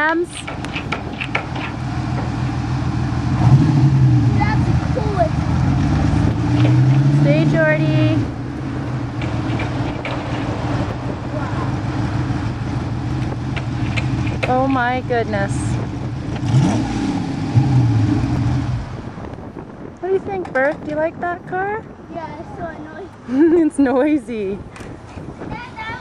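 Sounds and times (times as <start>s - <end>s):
sports car engine revving: 0.5s - 19.9s.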